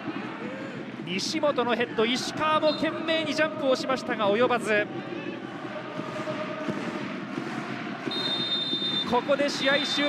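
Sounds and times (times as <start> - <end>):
stadium crowd noise: 0.0 - 10.0
referee whistle long blast: 8.1 - 9.1.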